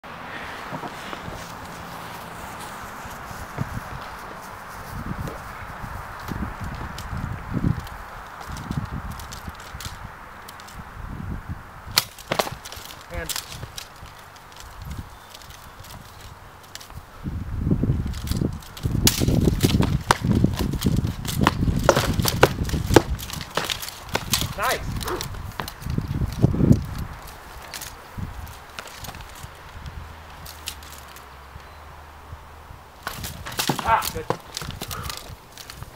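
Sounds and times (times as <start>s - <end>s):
footsteps on grass: 0.4s - 9.9s
swords striking wooden shields: 21.3s - 25.3s, 33.0s - 35.2s.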